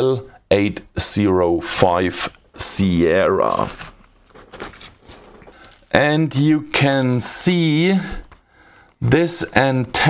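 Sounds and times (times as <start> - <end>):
rustling: 3.2 - 6.0.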